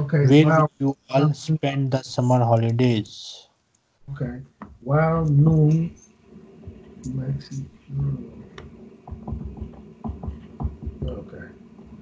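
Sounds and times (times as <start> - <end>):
dull rumble: 4.8 - 12.0
irregular low thumps: 6.6 - 12.0.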